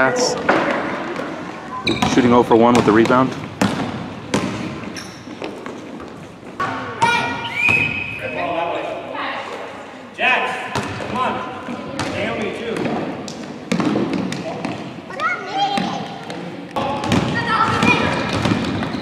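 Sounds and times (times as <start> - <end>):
basketball bouncing on hardwood floor: 0.4 - 7.9, 11.7 - 12.2, 13.7 - 14.8, 15.8 - 19.0.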